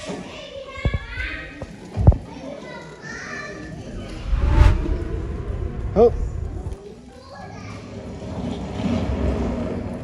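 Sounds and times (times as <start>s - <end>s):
children chattering and calling out: 0.0s - 3.9s.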